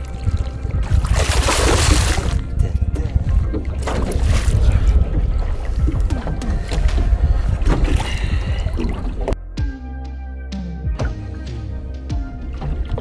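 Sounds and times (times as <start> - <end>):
wind rumble on microphone: 0.0 - 9.4
music: 0.0 - 13.0
fish splashing at water surface: 0.8 - 2.4.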